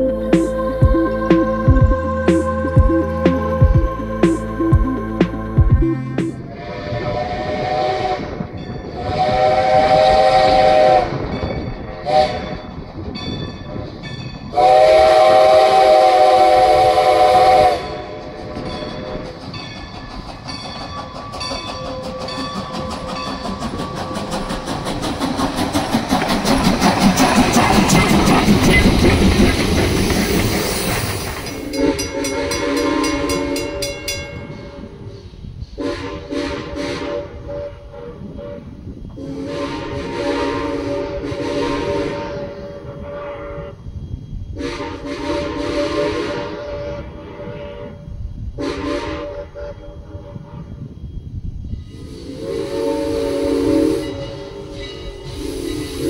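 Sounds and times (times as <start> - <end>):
steam locomotive chime whistle: 0.0 - 24.7, 30.6 - 56.0
steam train clanking past: 0.0 - 56.0.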